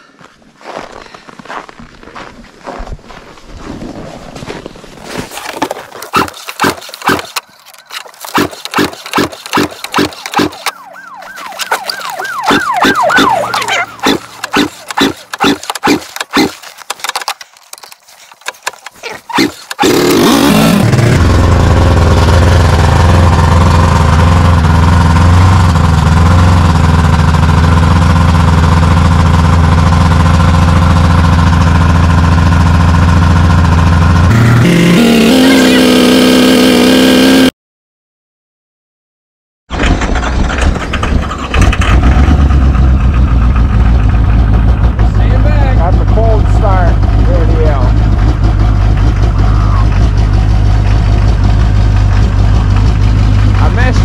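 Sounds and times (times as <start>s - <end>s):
engine sputter: 5.3s - 37.3s, 39.7s - 54.0s
engine cranking knocks: 6.0s - 10.8s, 11.6s - 20.3s, 39.7s - 43.8s
snowmobile engine idling: 11.5s - 20.3s, 21.0s - 34.3s, 42.7s - 54.0s.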